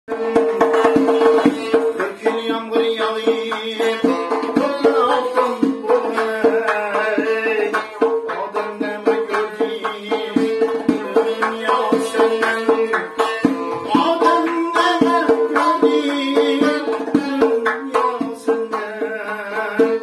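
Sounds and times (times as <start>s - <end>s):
man singing: 0.1s - 20.0s
plucked long-necked lute: 0.1s - 20.0s.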